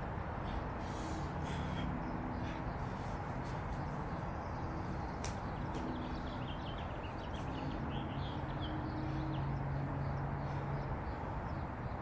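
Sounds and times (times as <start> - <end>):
faint bird calls: 0.4 - 4.3.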